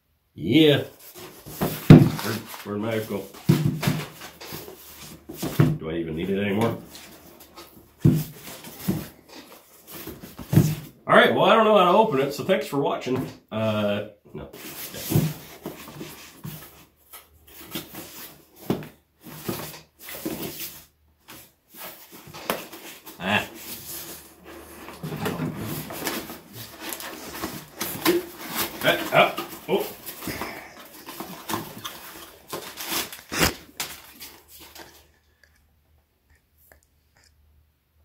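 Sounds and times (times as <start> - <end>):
cardboard box rustling and scraping: 0.9 - 5.7, 6.6 - 11.0, 14.6 - 35.1.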